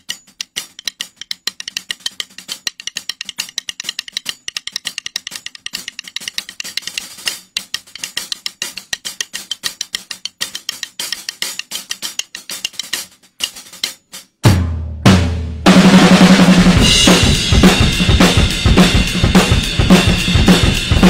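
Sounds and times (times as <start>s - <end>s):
drumsticks clicking together: 0.0s - 14.0s.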